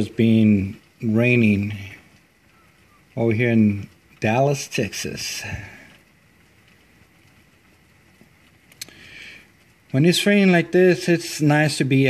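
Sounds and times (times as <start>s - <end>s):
faint steady rain: 0.0s - 12.0s.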